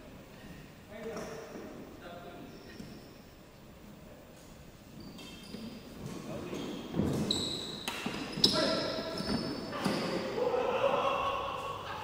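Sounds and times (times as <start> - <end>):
sneaker squeaks on wooden floor: 2.4 - 3.2, 4.9 - 10.3.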